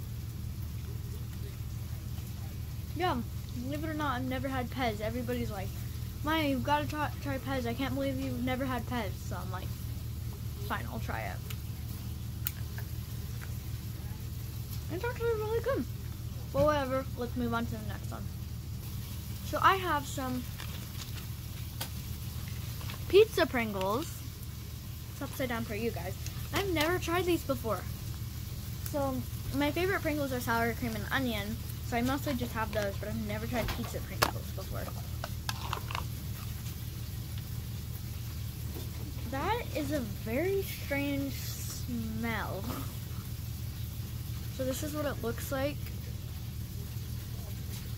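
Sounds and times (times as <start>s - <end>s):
low motor hum: 0.0s - 47.9s
foil seal crinkling and tearing: 20.4s - 23.1s.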